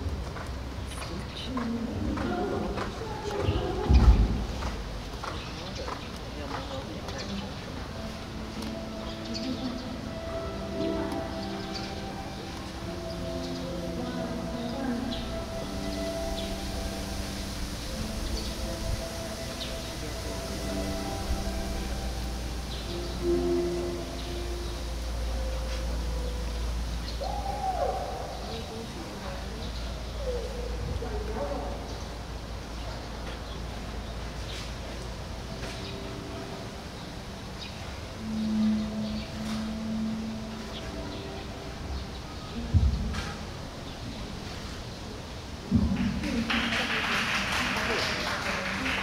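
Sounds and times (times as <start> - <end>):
horse hooves trotting on sand: 0.0 - 8.8
faint voices talking: 0.0 - 49.0
hooting animal call: 27.0 - 31.8.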